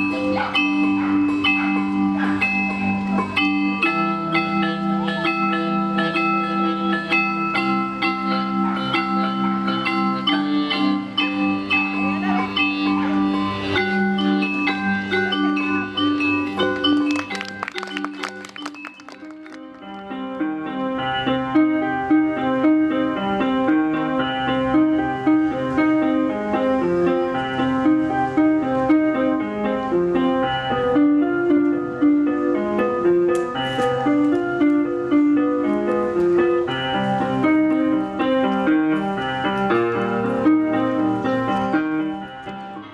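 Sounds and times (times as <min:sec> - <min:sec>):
keyboard bell-like melody: 0:00.0 - 0:42.9.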